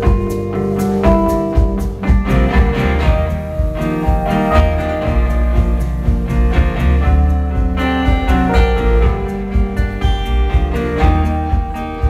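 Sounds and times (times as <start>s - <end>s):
acoustic guitar: 0.0s - 12.0s
upright double bass: 0.1s - 12.0s.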